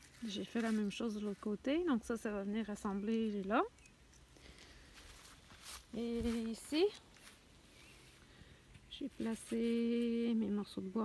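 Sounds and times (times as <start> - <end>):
rustling and handling noise: 0.0 - 1.9, 2.6 - 10.3
soft crisp sounds: 2.8 - 8.1.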